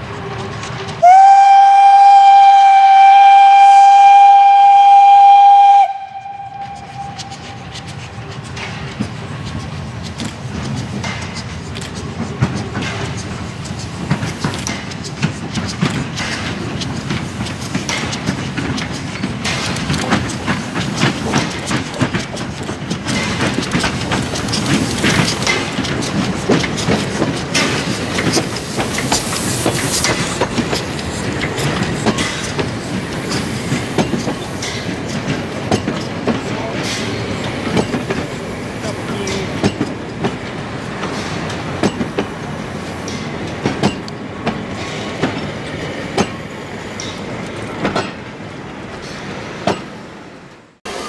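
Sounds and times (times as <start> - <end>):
steam train rolling past: 0.0 - 51.0
wheels clicking over rail joints: 0.2 - 50.6.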